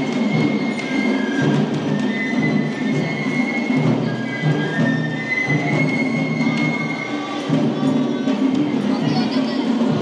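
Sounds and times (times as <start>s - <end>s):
crowd noise: 0.0s - 10.0s
festival music with high melody: 0.0s - 10.0s.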